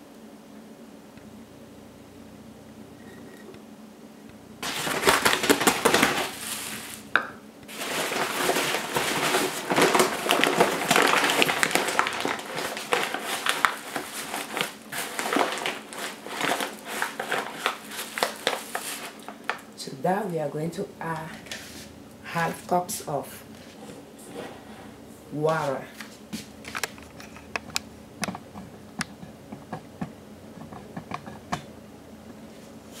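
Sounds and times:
plastic bag crinkling and rustling: 4.6 - 19.8.

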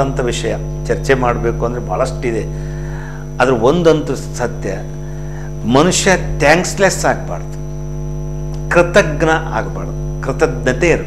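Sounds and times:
man speaking: 0.0 - 2.6, 3.4 - 4.9, 5.6 - 7.6, 8.7 - 11.0
electrical mains hum: 0.0 - 11.0.

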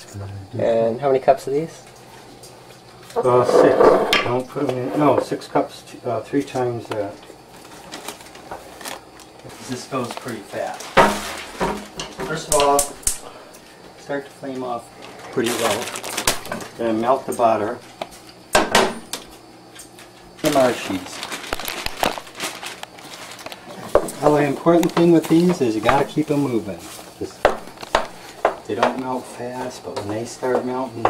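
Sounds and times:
low room noise: 0.0 - 31.0
plastic bag crinkling: 7.6 - 10.9, 15.1 - 16.8, 20.4 - 27.9.

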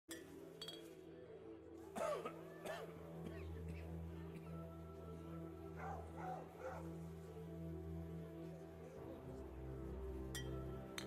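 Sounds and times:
glassy clink: 0.1 - 1.0
faint background music: 0.1 - 11.0.

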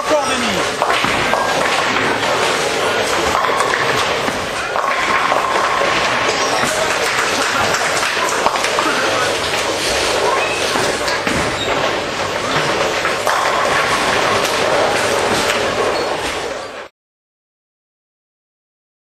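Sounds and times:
bowling balls rolling: 0.0 - 16.9
bowling pins clattering: 0.0 - 16.9
indistinct chatter: 1.7 - 13.2.

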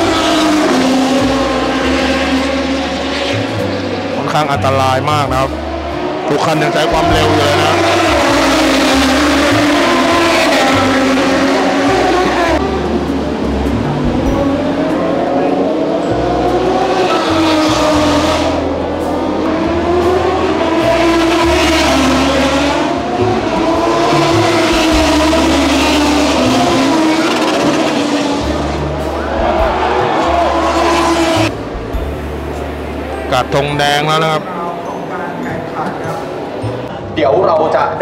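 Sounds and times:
race motorcycle engines passing: 0.0 - 38.0.

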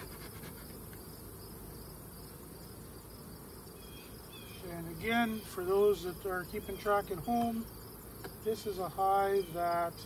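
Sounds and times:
crickets chirping: 0.0 - 10.0
honeybees buzzing: 0.0 - 10.0.

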